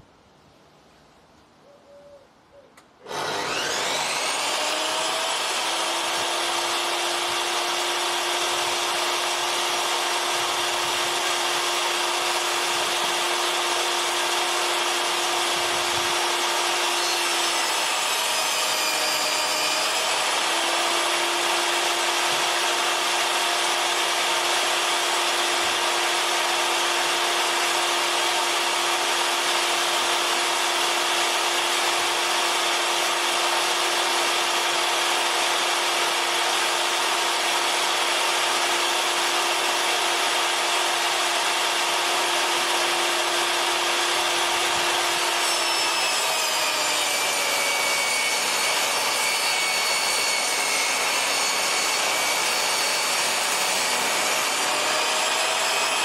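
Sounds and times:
table saw ripping timber: 0:03.0 - 0:56.0.

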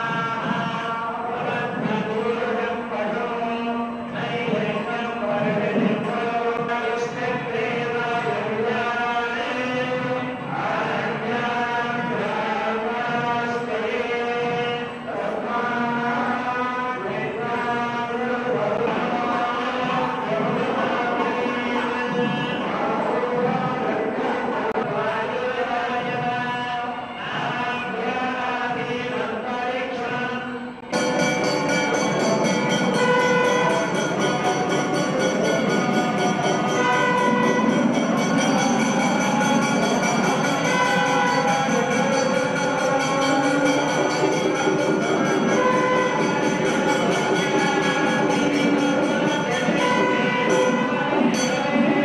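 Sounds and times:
priests chanting: 0:00.0 - 0:52.0.

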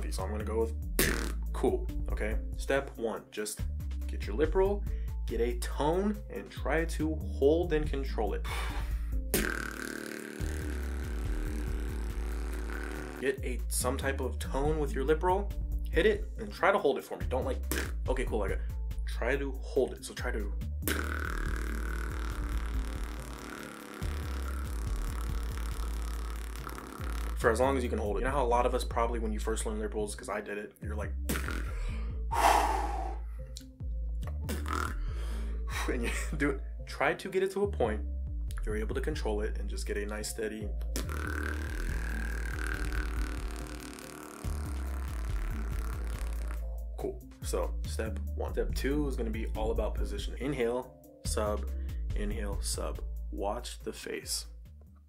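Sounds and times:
background music with deep bass: 0:00.0 - 0:55.0
beatbox lip roll buzzing: 0:01.0 - 0:01.4, 0:09.3 - 0:13.4, 0:20.8 - 0:27.6, 0:31.3 - 0:33.2, 0:34.3 - 0:35.0, 0:40.8 - 0:46.9.

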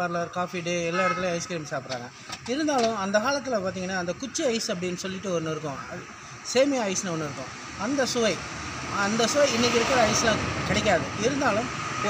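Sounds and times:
man talking: 0:00.0 - 0:11.8
passing vehicle traffic noise: 0:00.0 - 0:12.0.

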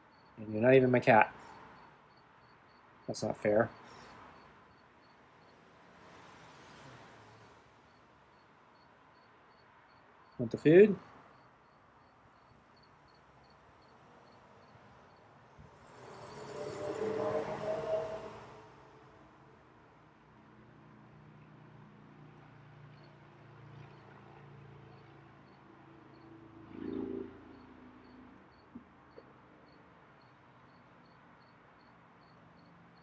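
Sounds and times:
cricket chirping: 0:00.0 - 0:05.7, 0:06.5 - 0:10.5, 0:11.2 - 0:18.8, 0:23.0 - 0:23.2, 0:23.8 - 0:24.2, 0:24.9 - 0:33.0
vehicle passing: 0:03.4 - 0:08.0, 0:14.6 - 0:19.8, 0:20.9 - 0:28.5.

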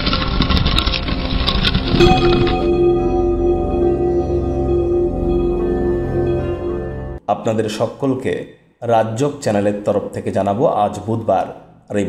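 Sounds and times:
low rumbling: 0:00.0 - 0:07.2.

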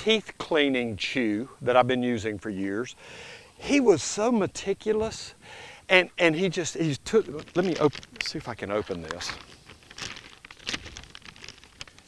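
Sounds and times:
plastic pouch crinkling: 0:06.6 - 0:12.0.

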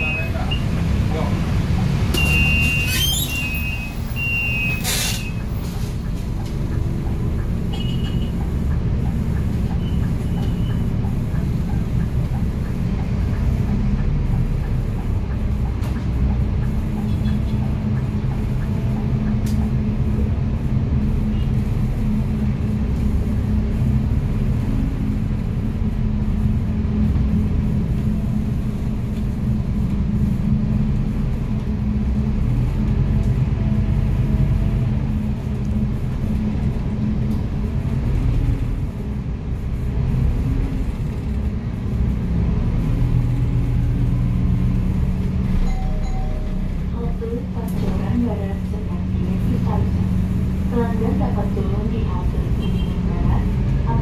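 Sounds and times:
bus drivetrain drone: 0:00.0 - 0:54.0
road rumble: 0:00.0 - 0:54.0.

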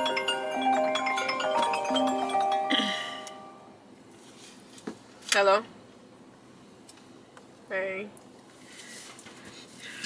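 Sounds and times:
phone ringtone marimba tune: 0:00.0 - 0:03.7.

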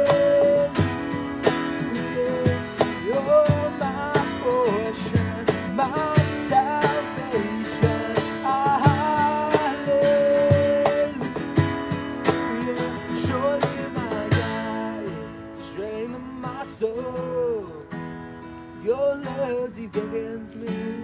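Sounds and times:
acoustic guitars strumming: 0:00.0 - 0:21.0.

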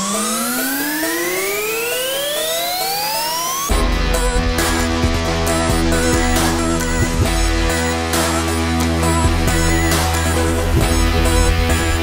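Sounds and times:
synthesizer riser: 0:00.0 - 0:12.0.

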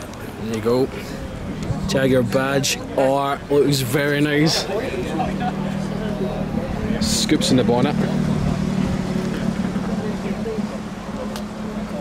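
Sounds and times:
car engine idling: 0:00.0 - 0:12.0
faint voices: 0:00.0 - 0:12.0.

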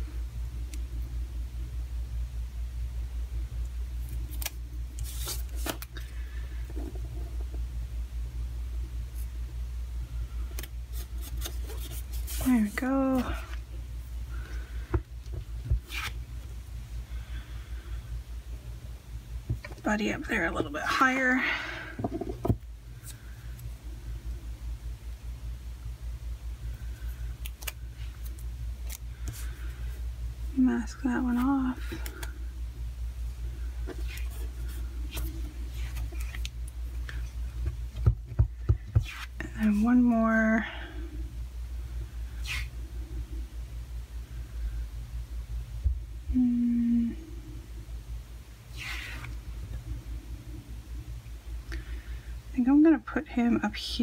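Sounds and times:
low background rumble: 0:00.0 - 0:54.0
low room hum: 0:00.0 - 0:54.0
woman humming: 0:46.2 - 0:47.4.

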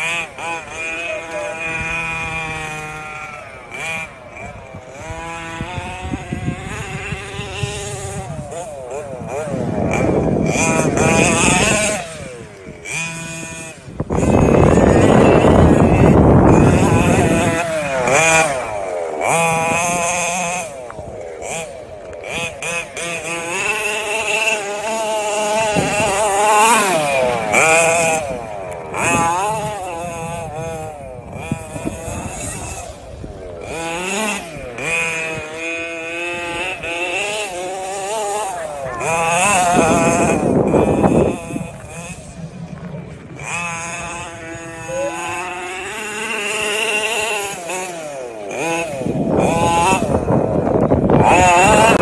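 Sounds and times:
two-stroke engine revving: 0:00.0 - 0:52.0.

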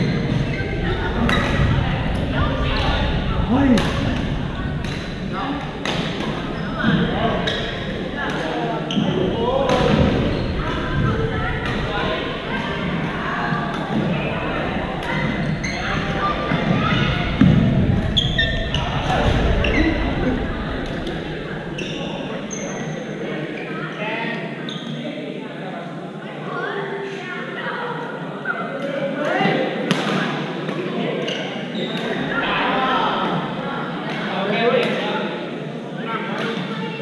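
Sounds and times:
background voices: 0:00.0 - 0:23.5
rackets hitting shuttlecock: 0:05.8 - 0:10.8.

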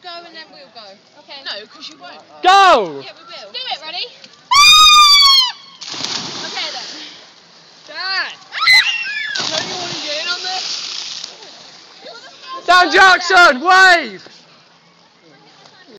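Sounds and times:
water splashing: 0:05.8 - 0:12.7
people yelling: 0:08.5 - 0:09.6.

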